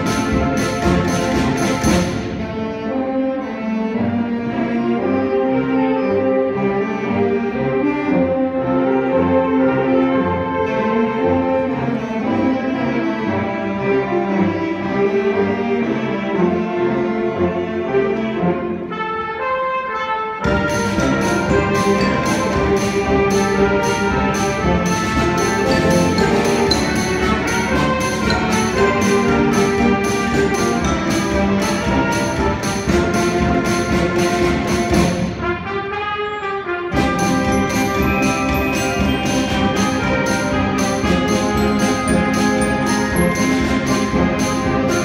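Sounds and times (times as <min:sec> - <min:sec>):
percussion strikes: 0:00.0 - 0:02.7, 0:20.4 - 0:35.7, 0:36.9 - 0:45.0
wind band playing chords: 0:00.0 - 0:45.0.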